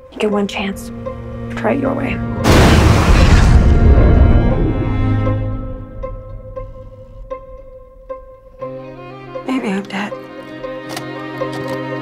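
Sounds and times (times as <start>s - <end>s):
orchestral music: 0.1s - 12.0s
deep cinematic boom: 2.2s - 8.7s
loud rumbling wash: 2.4s - 7.1s.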